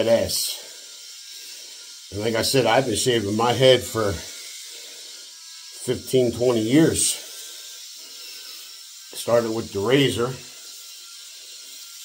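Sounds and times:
blades rasping on stubble: 0.0s - 12.0s
electric shaver motor buzz: 0.0s - 12.0s.

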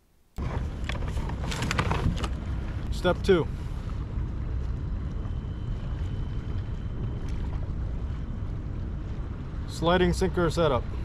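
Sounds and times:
wind buffeting microphone: 0.4s - 11.0s.

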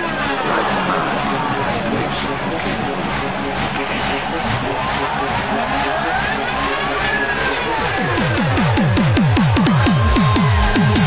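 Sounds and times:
fast electronic dance beat: 0.0s - 11.0s
gliding synth tones: 0.0s - 11.0s.

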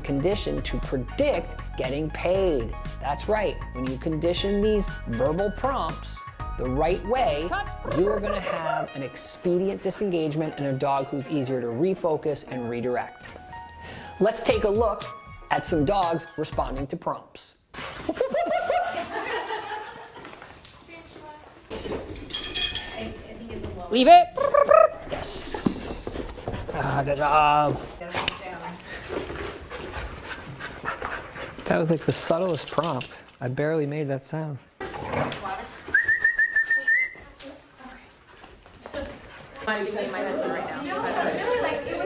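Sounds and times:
indistinct voices: 7.6s - 8.9s
people laughing: 18.0s - 20.4s, 40.0s - 42.0s
person whistling: 35.9s - 37.2s.

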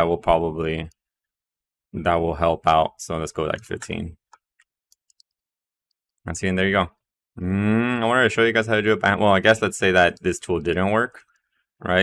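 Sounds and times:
keyboard and mouse clicks: 3.5s - 4.0s, 4.9s - 5.4s.

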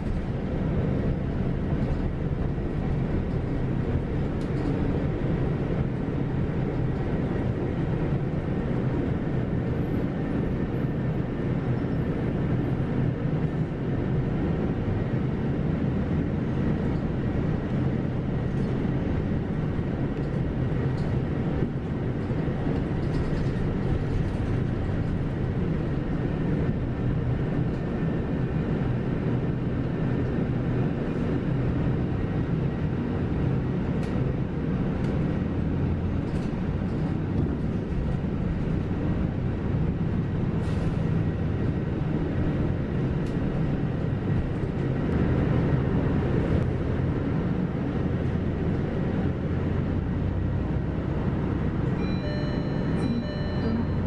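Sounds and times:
bus engine hum and road rumble: 0.0s - 54.0s.

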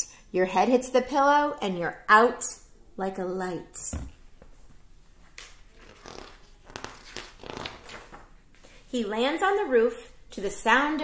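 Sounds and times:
soft scratchy sounds: 5.6s - 8.3s.

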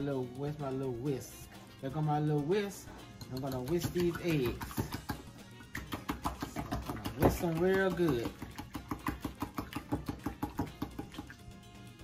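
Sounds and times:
wire whisk beating eggs in bowl: 3.2s - 5.2s, 5.8s - 11.1s.

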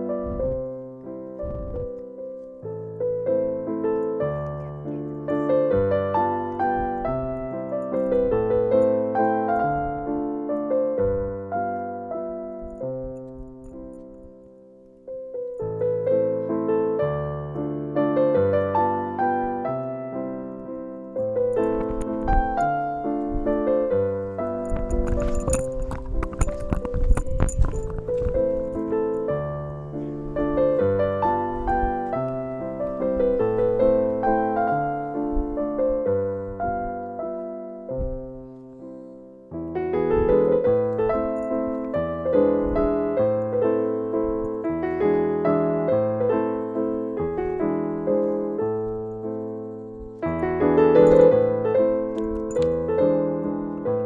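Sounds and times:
gentle piano melody: 0.0s - 54.0s
sharp clicks and knocks: 24.4s - 29.3s.

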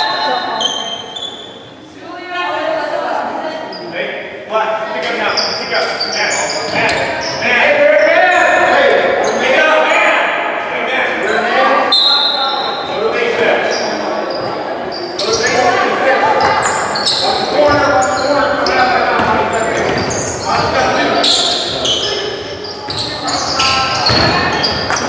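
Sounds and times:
sneakers squeaking on hardwood floor: 0.0s - 1.8s, 5.1s - 9.5s, 12.0s - 25.0s
spectators and players calling: 0.0s - 25.0s
basketball bouncing: 17.6s - 18.0s, 19.2s - 20.8s, 23.9s - 25.0s.

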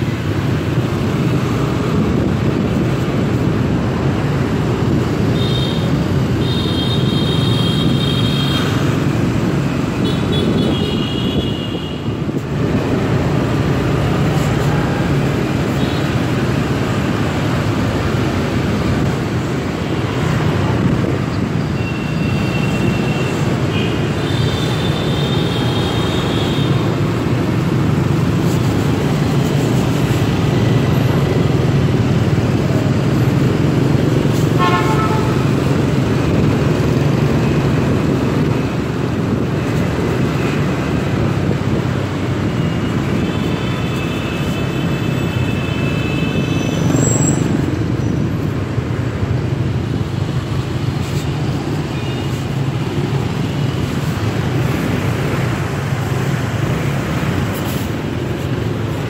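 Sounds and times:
engine and road hum: 0.0s - 59.0s
motorbike traffic noise: 0.0s - 59.0s
horns tooting: 34.6s - 35.5s.

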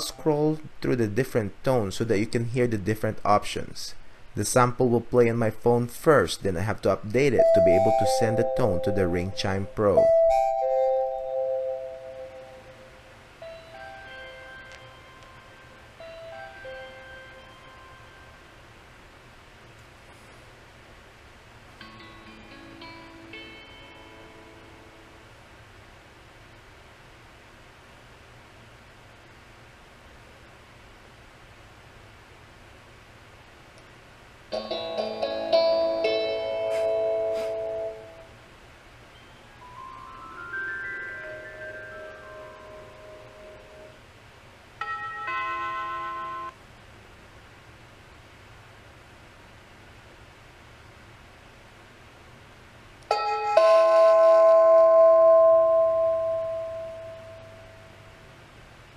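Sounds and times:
electronic doorbell chime tunes: 7.4s - 12.8s, 13.4s - 18.4s, 39.2s - 43.9s, 44.8s - 46.6s, 53.1s - 58.1s.

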